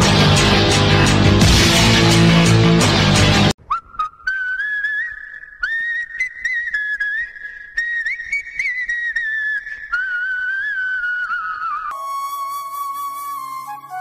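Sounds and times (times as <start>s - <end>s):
loud guitar-driven music: 0.0s - 3.5s
person whistling a tune: 3.7s - 14.0s.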